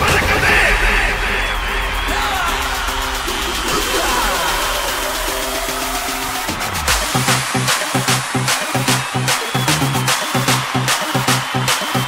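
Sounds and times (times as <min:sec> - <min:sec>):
loud music with low bass: 0:00.0 - 0:12.0.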